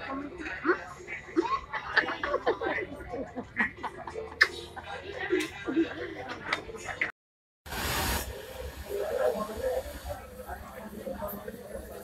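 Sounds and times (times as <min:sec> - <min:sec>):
low indistinct voices: 0:00.0 - 0:07.1, 0:08.0 - 0:12.0
women laughing and talking: 0:01.2 - 0:06.4
burst of hiss: 0:07.7 - 0:10.1.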